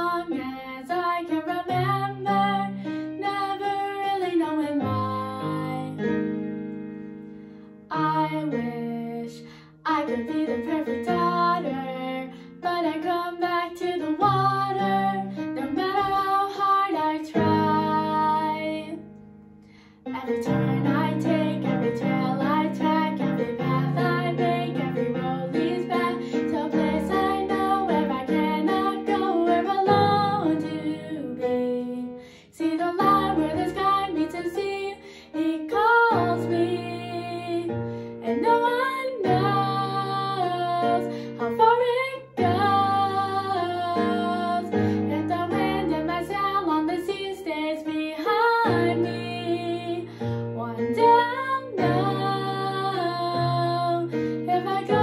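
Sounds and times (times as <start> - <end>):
girl singing ballad: 0.0 - 55.0.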